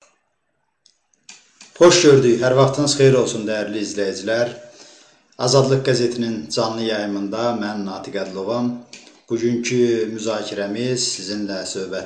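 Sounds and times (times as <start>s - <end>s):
man speaking: 1.6s - 12.0s.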